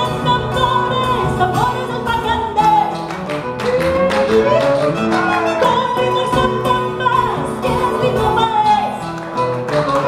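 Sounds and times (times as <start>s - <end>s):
strummed guitars: 0.0s - 10.0s
violin melody: 0.0s - 10.0s.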